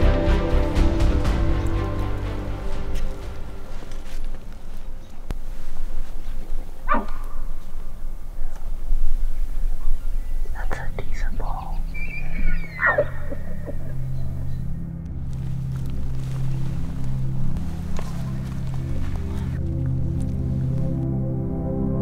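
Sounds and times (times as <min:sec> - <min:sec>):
low music drone: 0:00.0 - 0:22.0
elk bugling whistle: 0:11.8 - 0:14.7.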